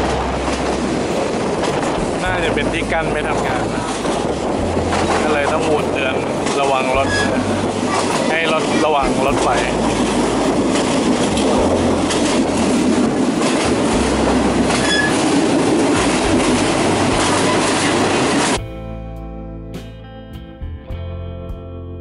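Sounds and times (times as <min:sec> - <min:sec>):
train wheels rushing on rails: 0:00.0 - 0:18.6
wind rushing: 0:00.0 - 0:18.6
deep rumble: 0:00.0 - 0:20.0.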